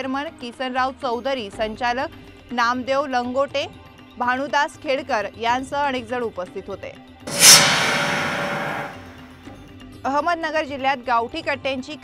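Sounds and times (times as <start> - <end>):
whooshing hit sound effect: 7.3 - 9.3.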